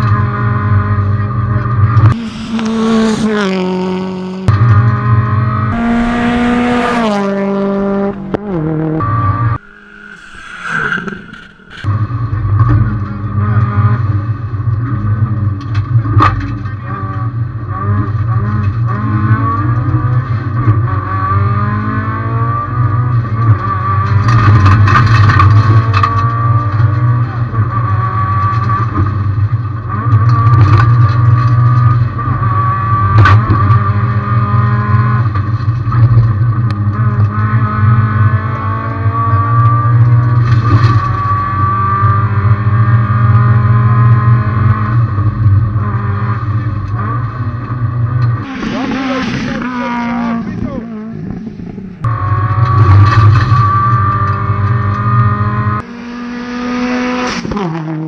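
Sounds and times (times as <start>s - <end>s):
rally car engine at high revs: 0.0s - 9.8s, 11.0s - 58.0s
rushing noise with falling pitch: 2.2s - 3.4s, 9.6s - 11.9s.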